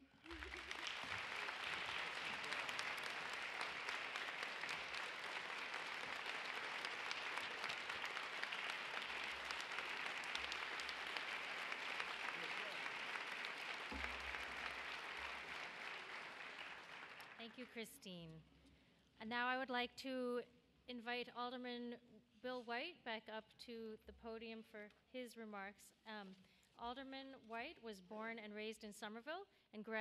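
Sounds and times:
large audience applauding: 0.0s - 17.7s.

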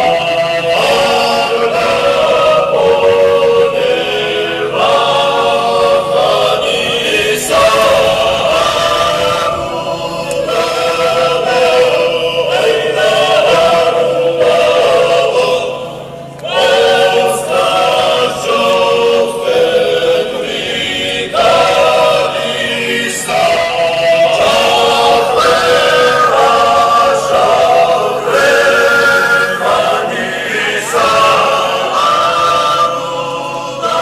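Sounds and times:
choir singing a chant: 0.0s - 34.0s.

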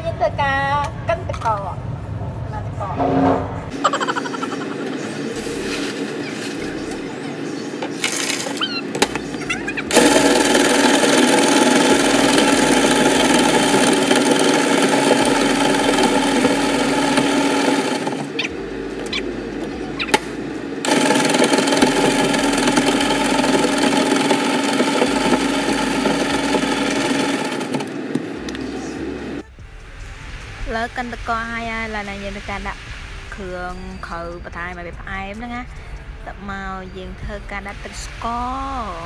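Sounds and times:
electric ice shaver running: 3.8s - 29.4s.

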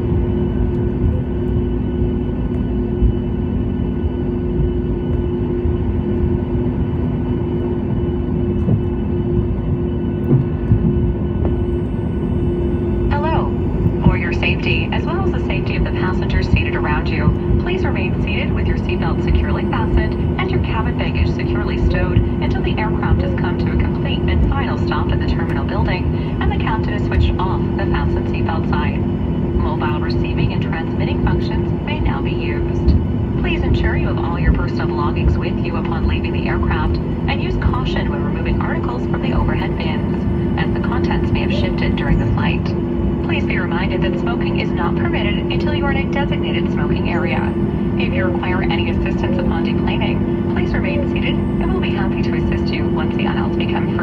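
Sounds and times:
airplane cabin rumble: 0.0s - 54.0s
jet engines idling hum: 0.0s - 54.0s.

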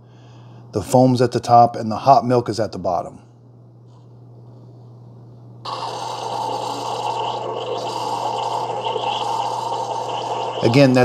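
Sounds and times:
coffee maker low hum: 4.2s - 11.0s
coffee maker rushing noise: 5.7s - 11.0s.

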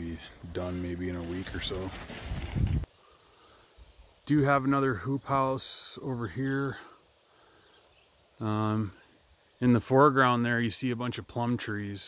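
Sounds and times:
wind buffeting microphone: 1.6s - 2.9s.

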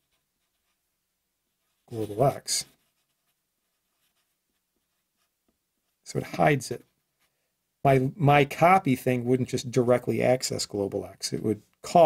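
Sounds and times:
marker scratching on paper: 0.0s - 0.8s, 1.6s - 6.0s
man talking: 1.9s - 2.8s, 6.1s - 6.9s, 7.9s - 12.0s.

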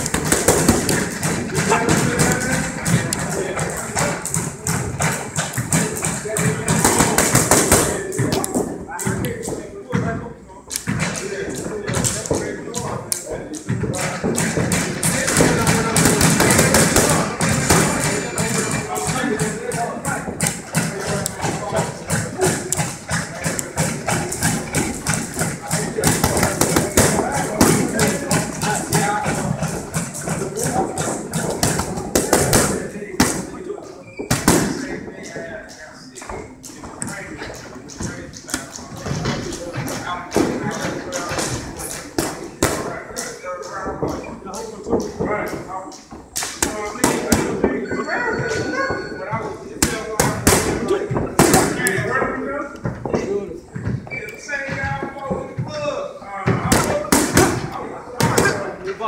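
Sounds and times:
gloves smacking focus mitts: 0.0s - 9.6s.

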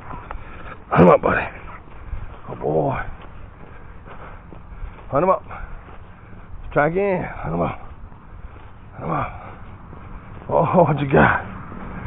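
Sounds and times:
footsteps on concrete: 0.0s - 12.0s.

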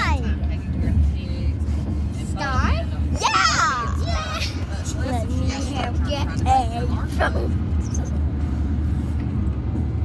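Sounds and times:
child's voice: 0.0s - 0.3s, 3.2s - 7.6s.

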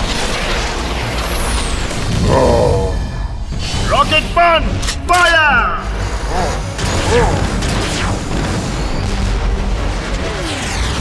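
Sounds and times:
low rumble: 1.8s - 3.6s.

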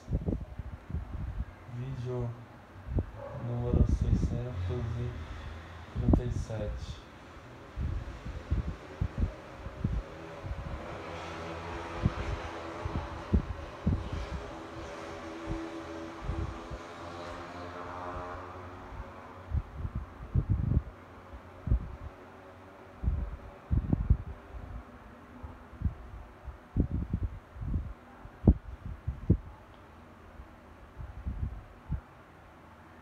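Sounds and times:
airflow buffeting microphone: 0.0s - 32.2s
fan whirring: 0.0s - 33.0s.

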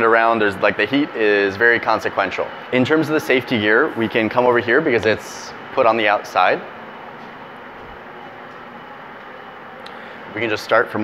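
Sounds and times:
workshop background hiss: 0.0s - 11.0s.

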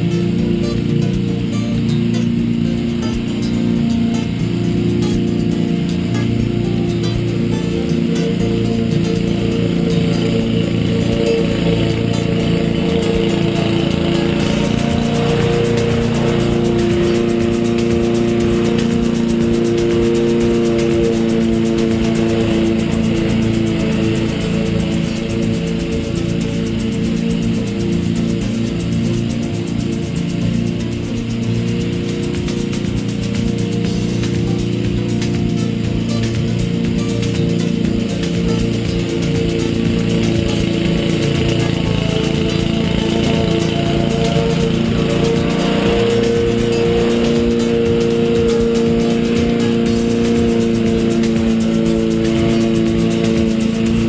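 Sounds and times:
background music: 0.0s - 54.0s
lawn mower running: 0.0s - 54.0s.

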